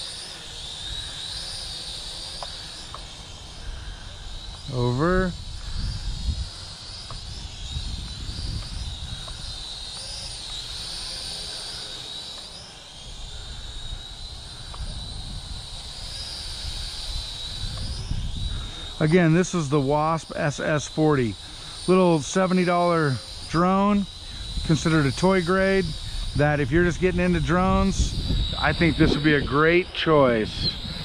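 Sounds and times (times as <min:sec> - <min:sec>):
drone propellers whining: 0:00.0 - 0:31.0
wind rumble on microphone: 0:03.6 - 0:09.7, 0:13.3 - 0:19.9, 0:23.5 - 0:31.0.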